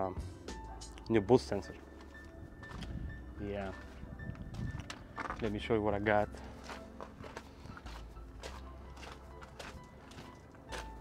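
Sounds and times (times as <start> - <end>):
faint background music: 0.0 - 11.0
footsteps crunching on gravel: 0.9 - 11.0.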